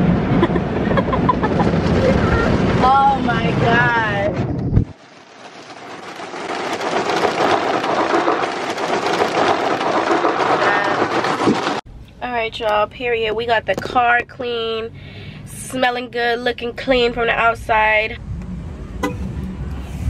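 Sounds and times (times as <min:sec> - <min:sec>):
water spray rushing on car: 0:04.9 - 0:11.8.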